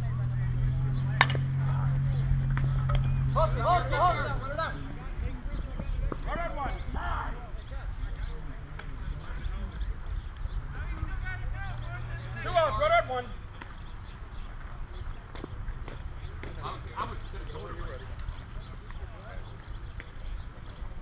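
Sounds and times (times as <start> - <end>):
players shouting: 0.0 - 9.9, 10.6 - 13.5
bat striking ball: 1.1 - 1.8.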